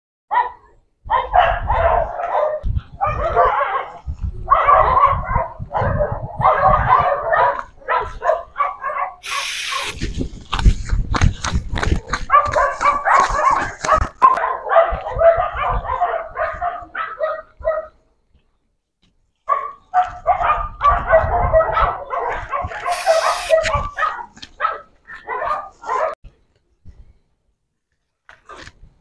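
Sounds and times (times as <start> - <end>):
dog barking and whining: 0.3 - 10.0, 12.3 - 17.9, 19.5 - 26.2
short hiss: 9.2 - 10.0, 22.9 - 23.6.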